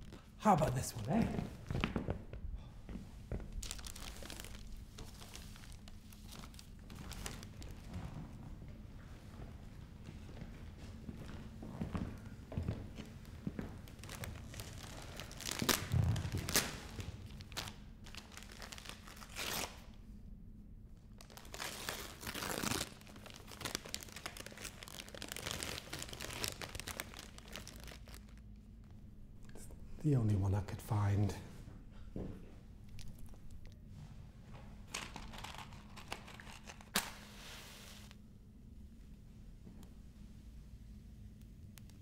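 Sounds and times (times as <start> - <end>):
wrapping paper crinkling and tearing: 3.5 - 8.0, 13.9 - 19.9, 21.1 - 28.4, 34.9 - 37.6.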